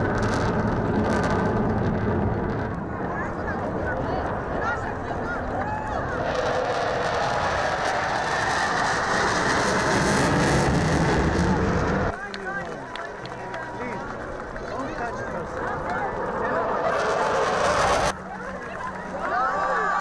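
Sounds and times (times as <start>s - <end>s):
fighter jet passing overhead: 0.0s - 12.2s, 13.0s - 19.1s
crowd chatter: 0.0s - 20.0s.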